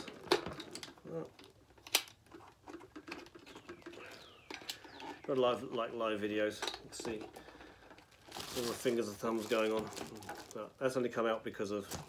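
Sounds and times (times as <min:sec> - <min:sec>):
plastic parts clicking together: 0:00.0 - 0:10.6.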